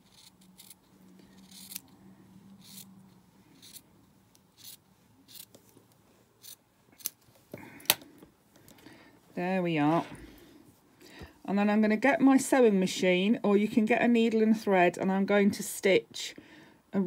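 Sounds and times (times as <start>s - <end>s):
scissors snipping fabric: 0.0s - 1.9s.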